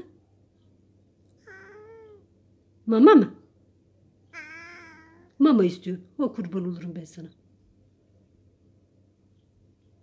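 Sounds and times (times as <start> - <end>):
cat meowing: 1.4 - 2.3, 4.3 - 5.4.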